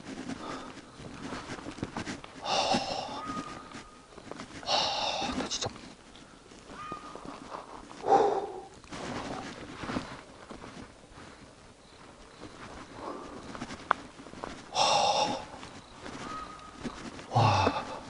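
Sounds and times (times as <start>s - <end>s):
footsteps on dirt path: 0.0s - 18.0s
man breathing hard: 0.1s - 1.6s, 2.4s - 5.6s, 7.3s - 9.5s, 12.8s - 13.6s, 14.5s - 16.2s, 17.2s - 18.0s.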